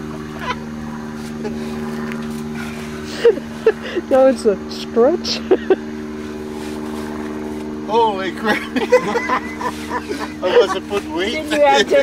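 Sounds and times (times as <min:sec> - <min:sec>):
motor running steadily: 0:00.0 - 0:12.0.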